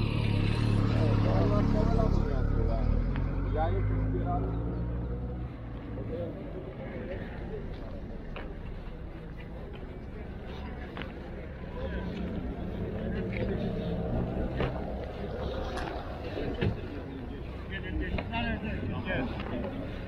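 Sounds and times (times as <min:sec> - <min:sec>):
faint voices: 0:00.0 - 0:20.0.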